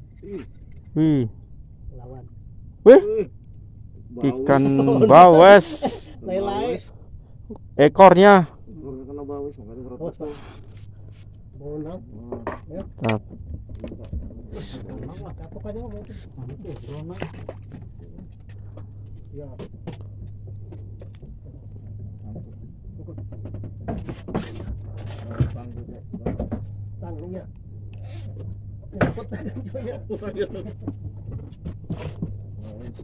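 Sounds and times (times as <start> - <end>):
steady low hum: 0.0 - 33.0
men talking: 0.3 - 3.4, 4.1 - 10.6, 11.6 - 13.2, 14.2 - 18.3, 25.0 - 27.6, 28.2 - 31.0.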